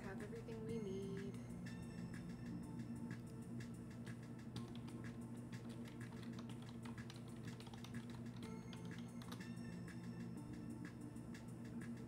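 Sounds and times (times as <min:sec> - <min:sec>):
low steady hum: 0:00.0 - 0:12.0
typing on computer keyboard: 0:04.6 - 0:09.5.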